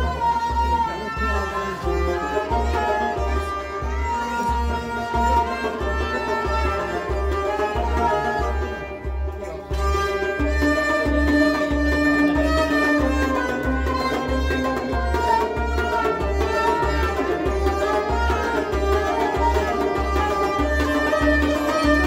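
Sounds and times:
bowed fiddle sliding melody: 0.0 - 22.0.

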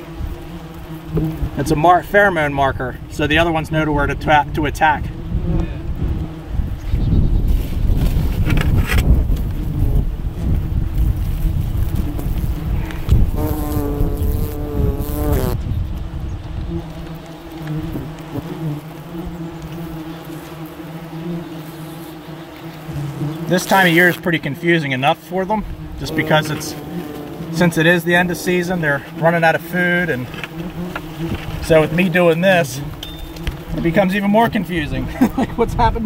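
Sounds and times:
wasp buzzing loudly close by: 0.0 - 2.4, 3.2 - 35.6
wasps buzzing: 0.0 - 2.4, 4.3 - 6.9, 8.1 - 15.6, 16.4 - 35.7.

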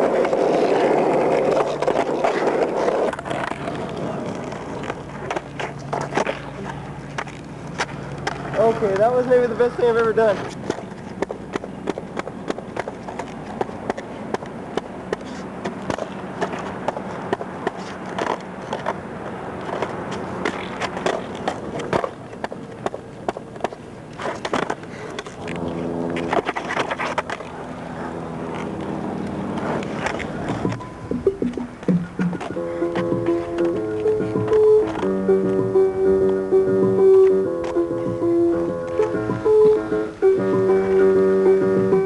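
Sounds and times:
skateboard clacks: 0.0 - 42.0
skateboard wheels rolling on asphalt: 0.0 - 42.0.

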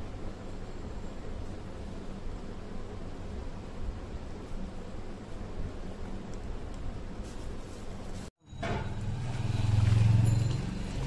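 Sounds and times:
low motor hum: 8.8 - 11.0.

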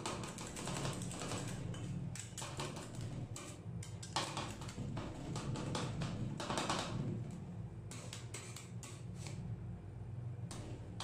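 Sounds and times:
metal spatulas tapping and scraping: 0.0 - 7.0, 7.9 - 9.4
steady low hum: 0.0 - 11.0.

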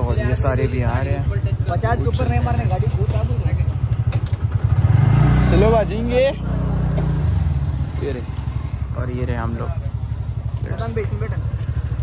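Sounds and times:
scooter engine idling and revving: 0.0 - 12.0.

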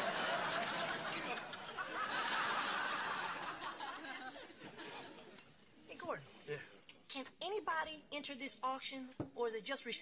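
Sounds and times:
studio audience laughing: 0.0 - 5.3.

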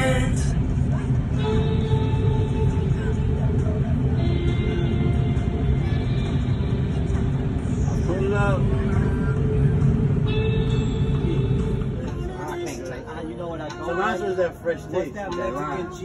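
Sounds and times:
road rumble inside car: 0.0 - 12.9
music playing: 0.0 - 16.0.

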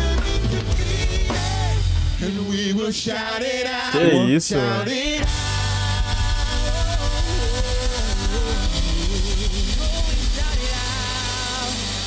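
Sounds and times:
drum kit with cymbals: 0.0 - 2.8, 5.1 - 12.0
worship band playing: 0.0 - 12.0.

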